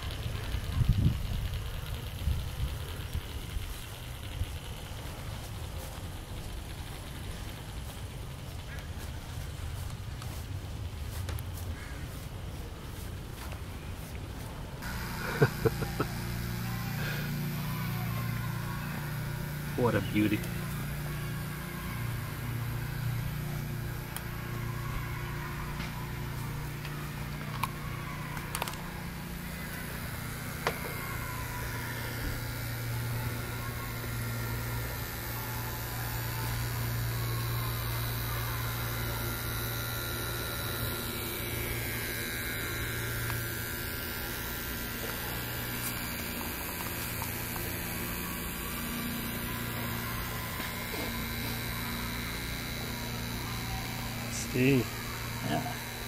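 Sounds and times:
steam locomotive model hum: 0.0s - 11.0s, 12.3s - 56.0s.

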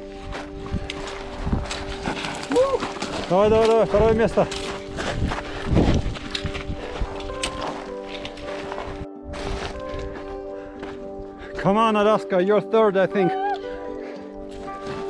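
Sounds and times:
footsteps on gravel: 0.0s - 11.1s
background music: 0.0s - 15.0s.

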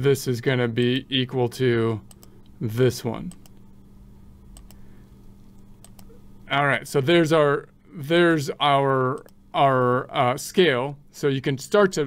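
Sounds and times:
low hum: 0.0s - 12.0s
computer mouse clicks: 2.0s - 2.6s, 3.3s - 3.7s, 4.5s - 4.8s, 5.5s - 6.2s, 9.1s - 9.4s.

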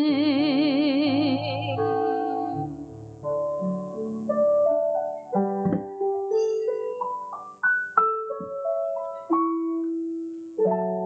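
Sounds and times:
slow piano melody: 0.0s - 11.0s.

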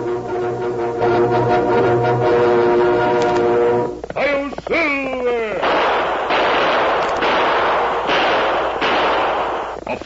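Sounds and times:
gunshots with ringing tail: 5.6s - 9.8s.

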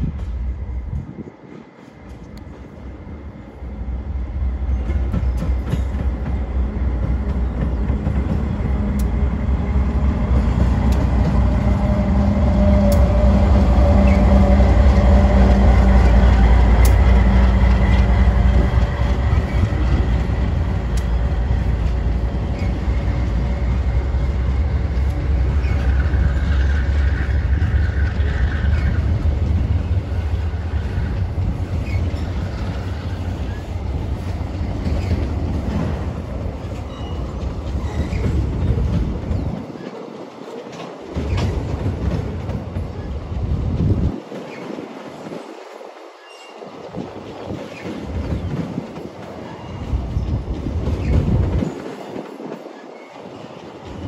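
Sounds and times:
locomotive engine hum and rumble: 2.1s - 44.3s.

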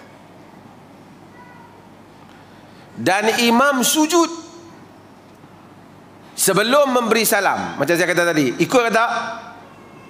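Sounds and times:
faint high-pitched call: 9.6s - 10.0s.

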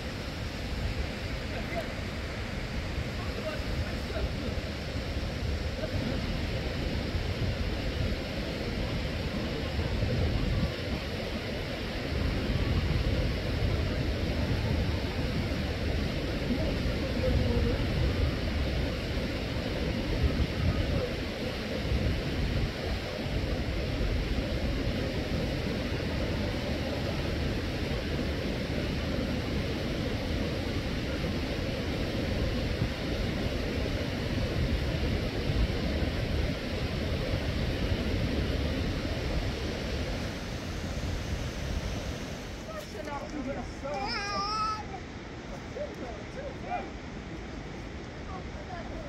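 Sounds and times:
low rushing noise: 0.0s - 49.0s.

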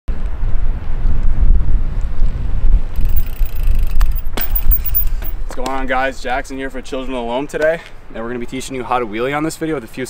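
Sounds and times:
wind buffeting microphone: 0.1s - 7.3s.

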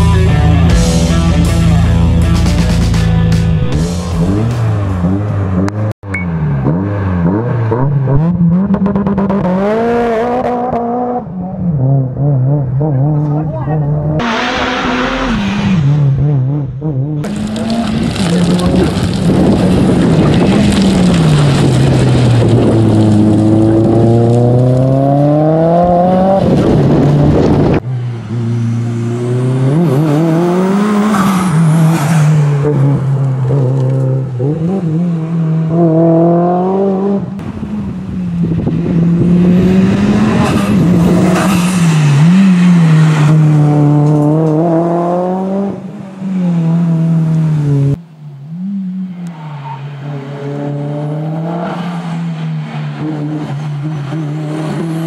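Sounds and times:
car engine revving: 0.0s - 55.0s.

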